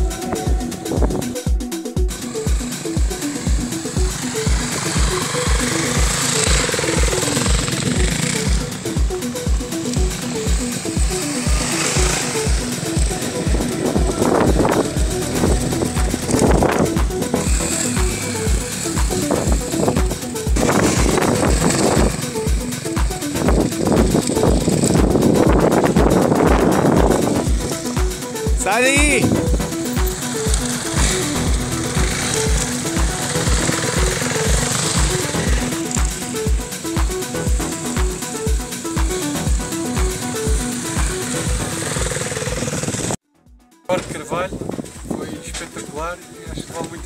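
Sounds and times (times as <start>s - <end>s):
electronic dance beat: 0.0s - 47.0s.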